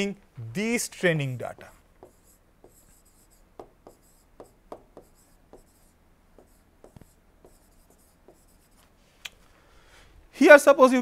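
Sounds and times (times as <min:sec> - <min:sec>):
stylus tapping and scratching on glass: 0:01.6 - 0:05.8.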